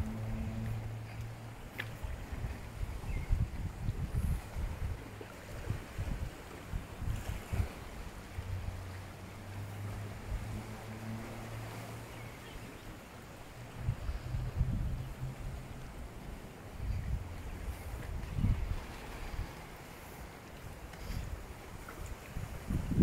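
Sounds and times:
steady low hum: 0.0s - 3.4s
wind buffeting microphone: 0.0s - 12.4s, 13.5s - 23.0s.

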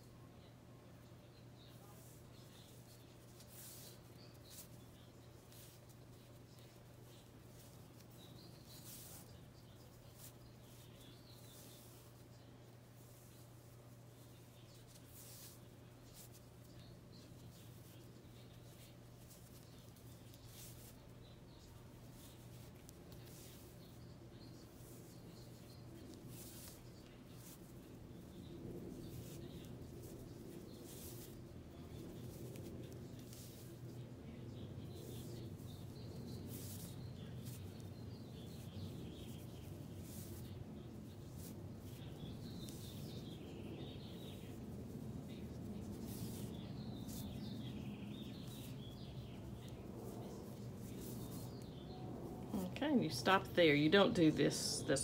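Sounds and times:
cord rustling and scraping: 1.6s - 53.3s.

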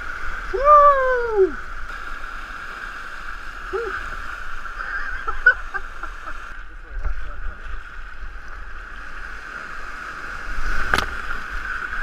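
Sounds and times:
whitewater rushing: 0.0s - 12.0s.

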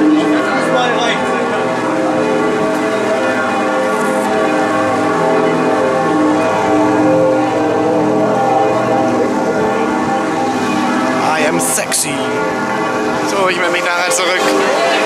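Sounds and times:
church bells pealing: 0.0s - 15.0s.

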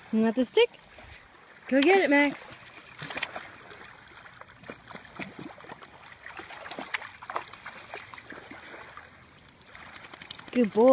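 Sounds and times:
dog splashing through water: 0.9s - 10.9s.

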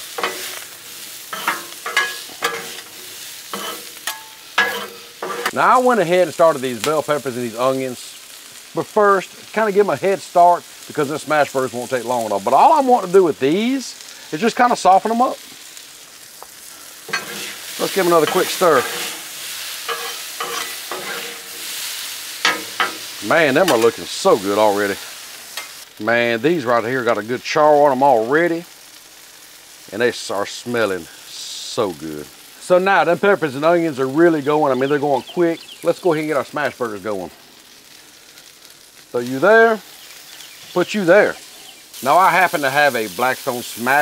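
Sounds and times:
metal spatula scraping griddle: 0.0s - 5.6s, 17.1s - 24.0s
vegetables sizzling in oil: 0.0s - 44.0s.

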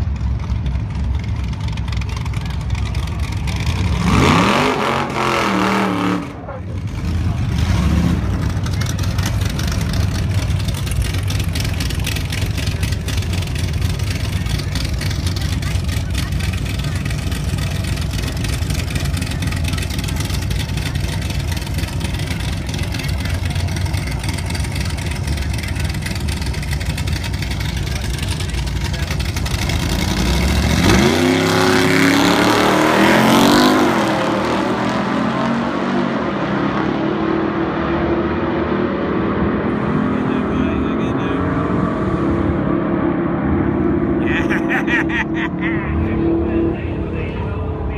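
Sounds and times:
engines idling loudly: 0.0s - 5.0s, 6.1s - 35.7s, 39.0s - 42.7s, 43.4s - 47.9s
engines launching full throttle: 0.0s - 47.9s.

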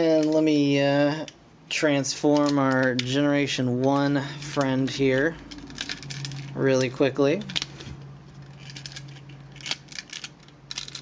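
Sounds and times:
plastic toy parts clicking: 2.3s - 3.2s, 8.6s - 11.0s.

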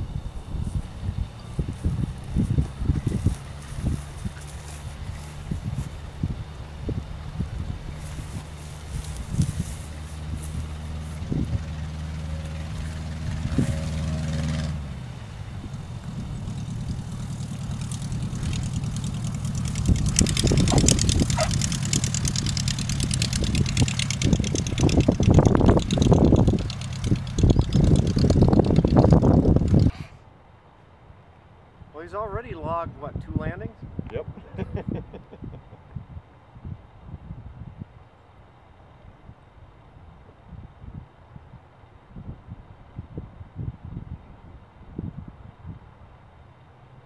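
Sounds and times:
light aircraft engine idling: 0.0s - 30.2s
rushing noise in gusts: 0.0s - 30.3s.

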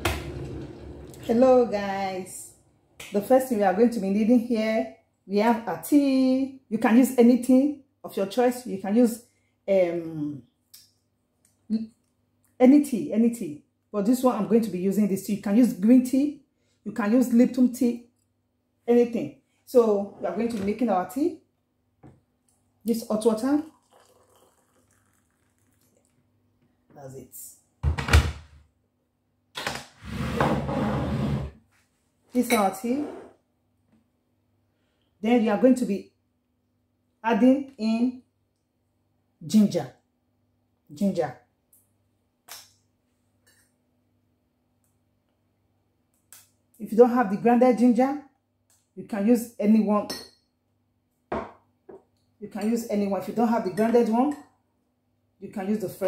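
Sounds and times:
water pouring into mug: 23.3s - 26.2s.

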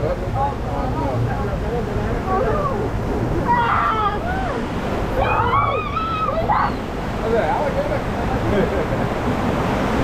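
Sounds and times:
rushing churning water: 0.0s - 10.0s.

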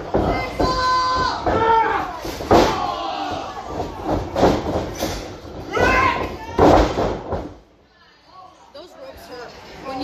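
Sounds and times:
bodies slamming on wrestling ring: 0.0s - 7.6s.

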